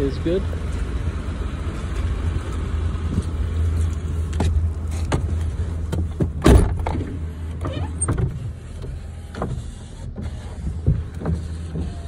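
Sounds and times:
power window motor running: 6.8s - 12.0s.

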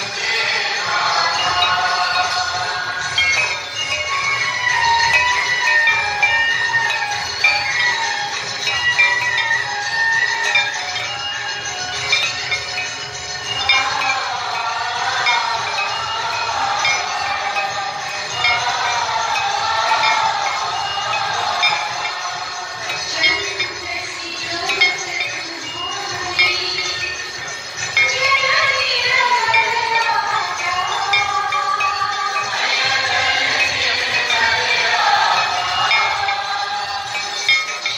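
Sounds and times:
people singing a hymn: 0.0s - 7.2s, 13.5s - 27.2s, 27.9s - 37.9s
hand bells ringing: 0.0s - 37.9s.

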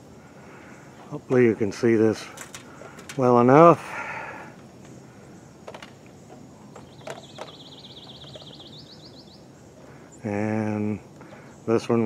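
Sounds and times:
bird trilling: 6.3s - 10.3s.

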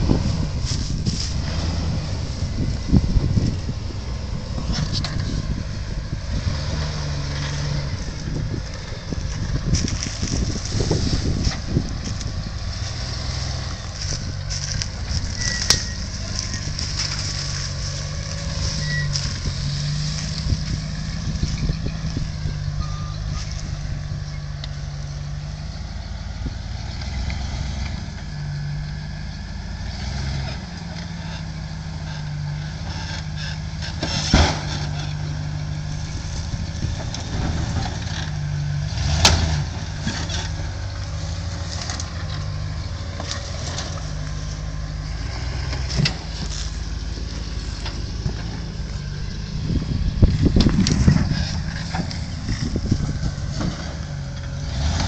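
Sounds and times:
truck engine running at low speed: 0.0s - 55.0s.

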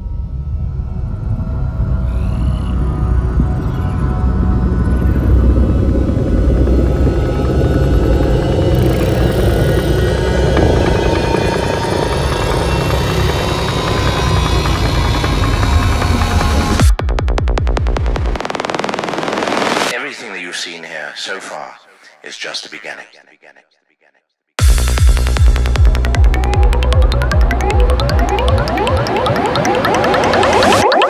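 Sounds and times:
low rumbling drone: 0.0s - 16.9s
noisy texture: 2.8s - 17.0s, 25.3s - 31.0s
high sweeping glides: 26.2s - 31.0s.

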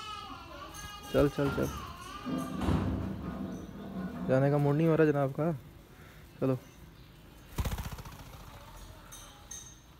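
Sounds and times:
bird wings flapping: 7.5s - 8.7s.

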